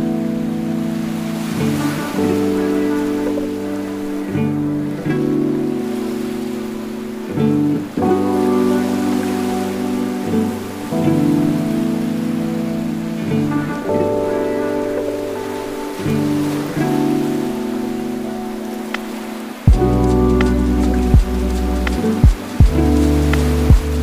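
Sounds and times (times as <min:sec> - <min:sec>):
lofi chill music: 0:00.0 - 0:24.0
steady hiss: 0:16.0 - 0:24.0.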